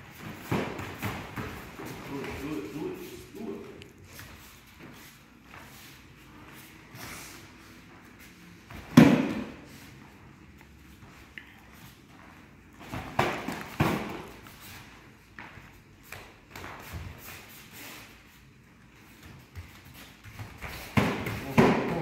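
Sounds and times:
feet shuffling on mats: 0:00.0 - 0:22.0.

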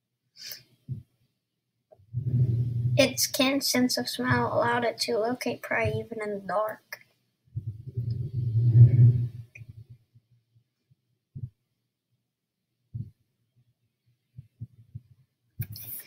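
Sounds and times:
deep rumble: 0:02.1 - 0:03.2, 0:07.6 - 0:09.9
deep thuds: 0:02.1 - 0:03.2, 0:07.6 - 0:09.9.

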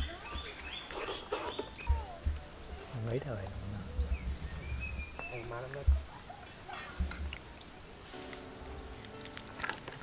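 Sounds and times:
birds chirping: 0:00.0 - 0:10.0
low rumble: 0:03.5 - 0:05.2.

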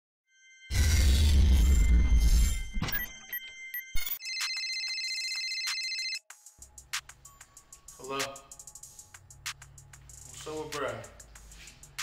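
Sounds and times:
mobile phone ringtone: 0:01.8 - 0:06.2.

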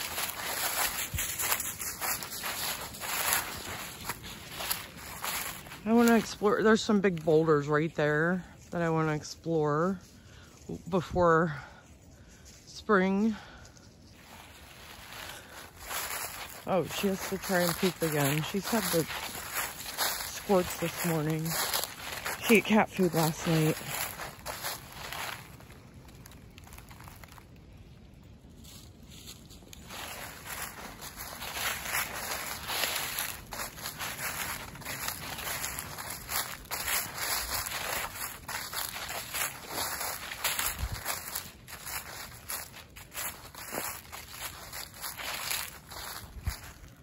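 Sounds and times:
footsteps in dry leaves: 0:00.0 - 0:47.0.

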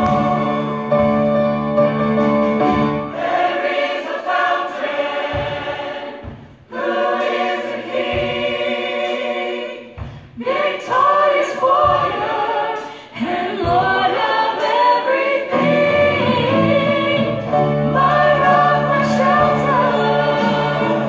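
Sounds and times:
church choir singing in harmony: 0:00.0 - 0:21.0.

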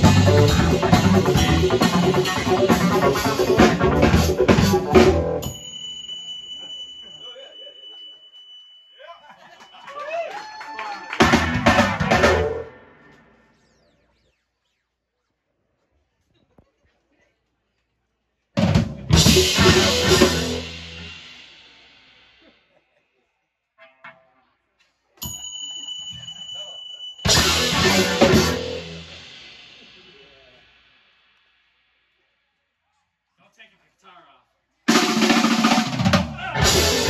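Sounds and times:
thin steady high tone: 0:05.4 - 0:10.0, 0:25.2 - 0:27.3
high-pitched electronic tone: 0:12.1 - 0:15.4
faint crowd talking: 0:15.6 - 0:28.9.

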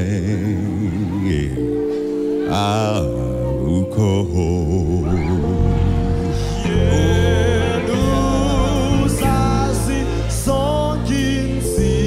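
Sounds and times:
gospel band music: 0:00.0 - 0:12.0
man singing with wide vibrato: 0:00.0 - 0:12.0
men singing: 0:02.5 - 0:12.0.

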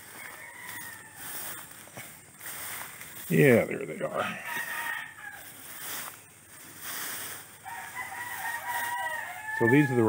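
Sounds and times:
rooster crowing: 0:00.0 - 0:01.6, 0:04.0 - 0:05.7, 0:07.6 - 0:10.0.

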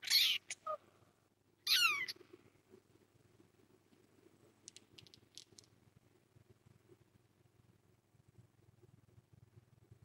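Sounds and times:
kitten mewing: 0:00.0 - 0:00.8, 0:01.7 - 0:02.2.

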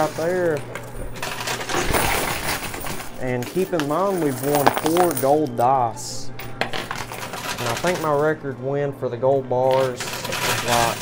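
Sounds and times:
coins and chips clattering: 0:00.0 - 0:08.4, 0:09.6 - 0:11.0.

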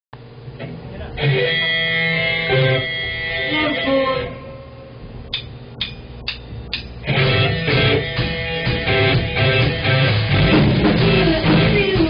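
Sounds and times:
guitar chords: 0:00.3 - 0:12.0
live rock band: 0:01.2 - 0:04.6, 0:07.0 - 0:12.0.

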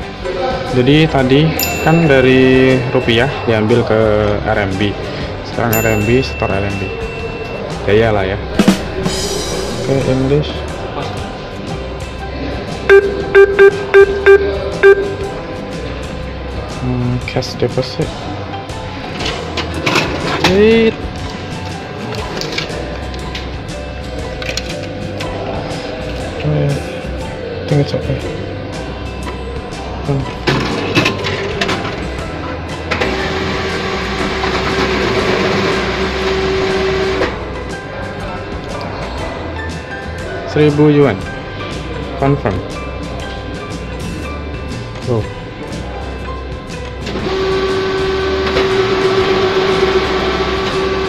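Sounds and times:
guitar music: 0:01.6 - 0:15.9
keypad beeps: 0:12.9 - 0:15.3
banknote counting machine whirring: 0:33.0 - 0:37.3, 0:47.1 - 0:51.0.

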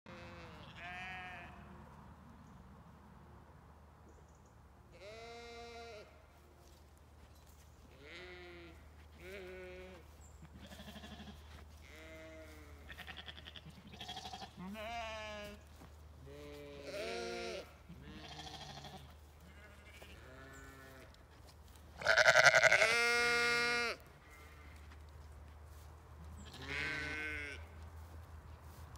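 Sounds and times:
sheep bleating: 0:00.1 - 0:01.7, 0:05.0 - 0:06.1, 0:08.0 - 0:15.6, 0:16.2 - 0:21.1, 0:22.0 - 0:25.0, 0:26.4 - 0:27.7.

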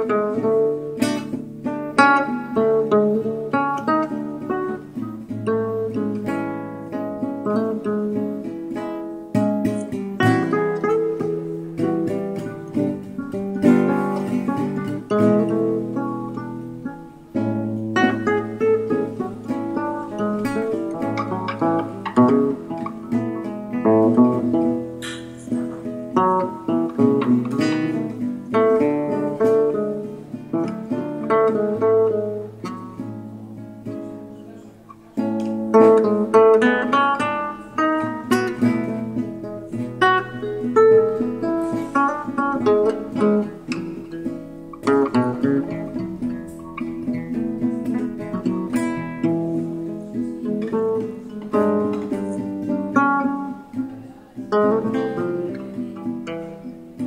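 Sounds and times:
acoustic guitar music: 0:00.0 - 0:57.0.

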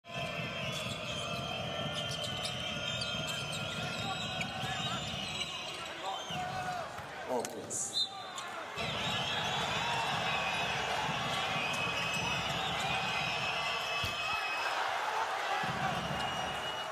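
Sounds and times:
arena crowd noise: 0:00.0 - 0:16.9.

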